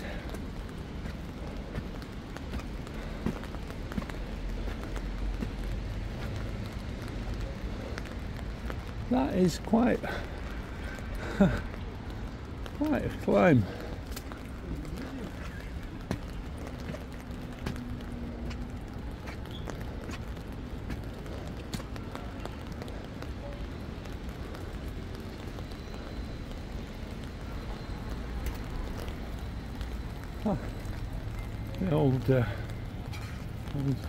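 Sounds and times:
footsteps on stairs and pavement: 0.0 - 34.0
low outdoor rumble: 0.0 - 34.0.

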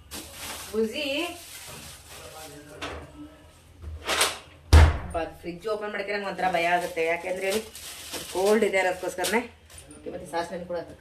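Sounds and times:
refrigerator door thudding shut: 4.7 - 5.2.

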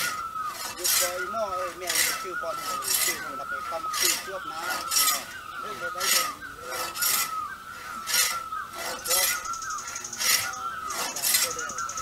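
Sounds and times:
hand saw cutting wood: 0.0 - 12.0.

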